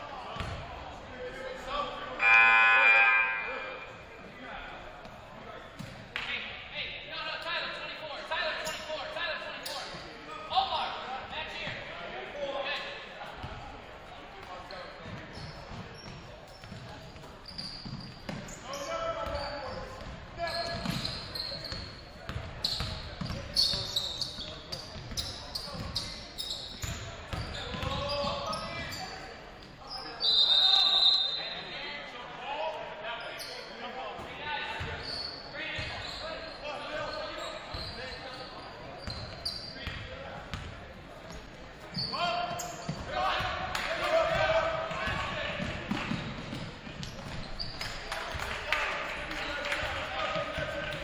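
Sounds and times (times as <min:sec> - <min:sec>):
voices echoing in a hall: 0:00.0 - 0:51.0
sneaker squeaks: 0:08.5 - 0:10.1, 0:14.4 - 0:31.7, 0:33.2 - 0:33.9, 0:34.6 - 0:48.1.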